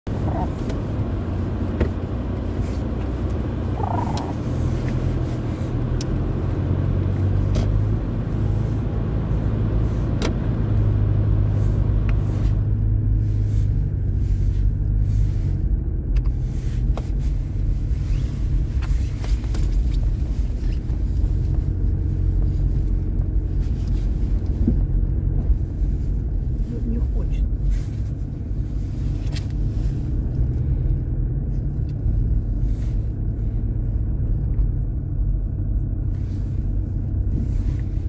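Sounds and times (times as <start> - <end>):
car engine and tyre drone: 0.1 - 38.0.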